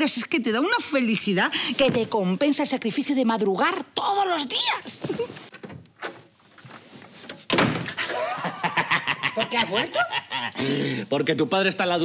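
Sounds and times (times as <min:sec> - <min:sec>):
wooden door opening: 0:05.0 - 0:08.1.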